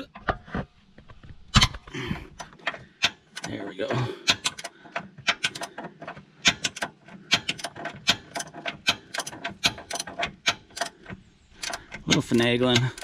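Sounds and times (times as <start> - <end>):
ratchet wrench clicking: 4.3 - 5.8, 6.4 - 11.0, 11.6 - 13.0.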